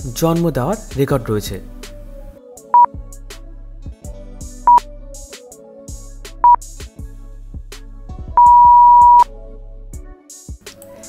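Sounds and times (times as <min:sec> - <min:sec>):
looping background music: 0:00.0 - 0:11.0
electronic timer beeps: 0:08.4 - 0:09.2.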